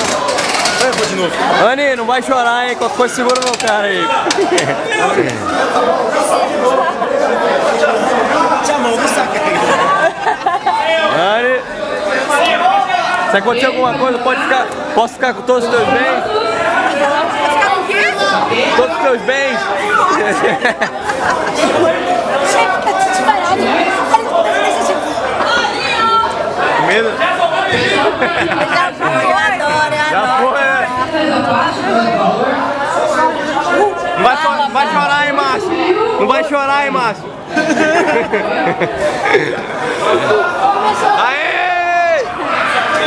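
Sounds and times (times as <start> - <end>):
people chattering and laughing: 0.0 - 43.0.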